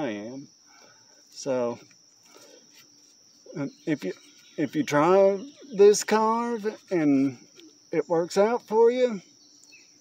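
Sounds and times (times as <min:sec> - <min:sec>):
insects chirring: 0:00.0 - 0:10.0
man talking: 0:03.5 - 0:09.2.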